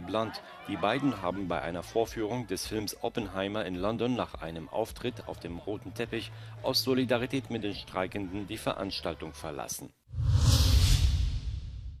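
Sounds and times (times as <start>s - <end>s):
whoosh sound effect: 10.1s - 12.0s
deep rumble: 10.2s - 12.0s.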